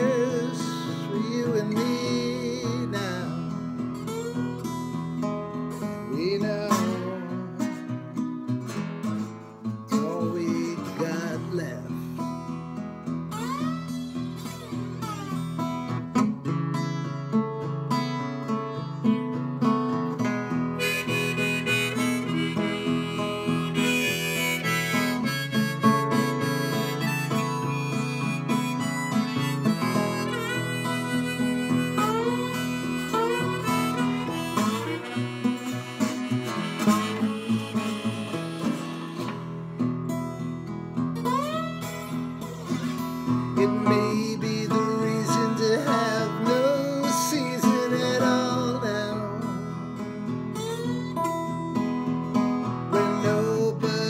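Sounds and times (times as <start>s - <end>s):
acoustic guitar strumming: 0.0s - 54.0s
harmonica melody with bent notes: 0.0s - 54.0s.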